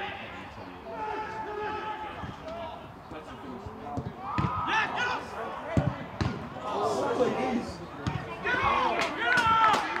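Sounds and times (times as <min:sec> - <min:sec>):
players shouting: 0:00.0 - 0:02.9, 0:04.1 - 0:10.0
football kicked with a thud: 0:05.7 - 0:06.4.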